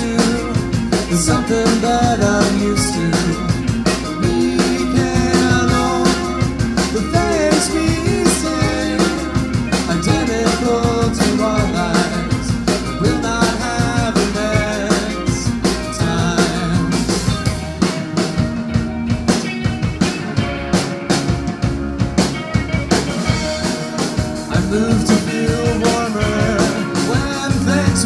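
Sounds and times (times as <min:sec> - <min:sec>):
person singing into microphone: 0:00.0 - 0:17.2, 0:24.5 - 0:28.0
drum kit steady beat: 0:00.0 - 0:28.0
electric guitars: 0:00.0 - 0:28.0.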